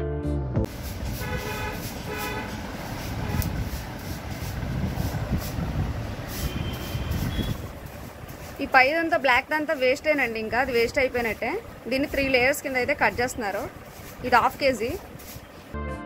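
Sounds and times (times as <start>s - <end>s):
background music: 0.0s - 0.7s, 15.7s - 16.0s
distant traffic noise: 0.7s - 15.8s.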